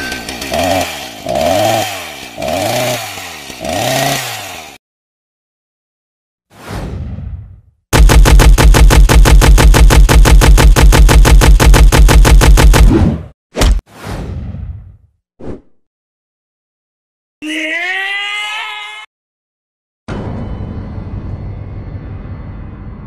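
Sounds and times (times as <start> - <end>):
cartoon chainsaw revving: 0.0 - 4.8.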